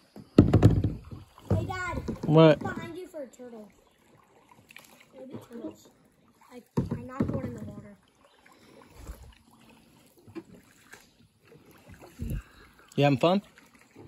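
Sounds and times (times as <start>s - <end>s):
paddle strokes in water: 0.0s - 14.0s
low knocks: 0.4s - 3.0s.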